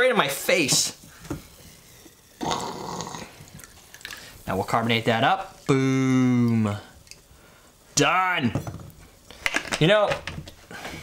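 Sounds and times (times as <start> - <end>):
liquid pouring into glass: 3.1 - 4.4.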